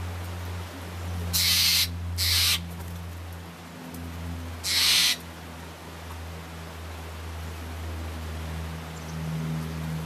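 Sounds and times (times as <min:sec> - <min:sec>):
jay harsh rasping calls: 0:01.3 - 0:02.6, 0:04.6 - 0:05.2.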